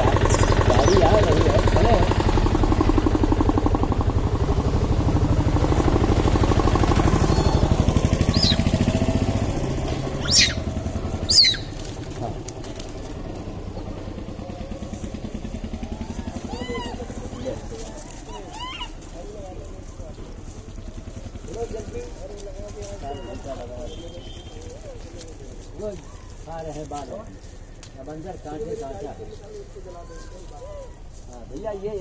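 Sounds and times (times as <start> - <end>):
small engine running: 0.0 - 32.0
sharp high-pitched calls: 7.2 - 8.8, 10.2 - 11.8.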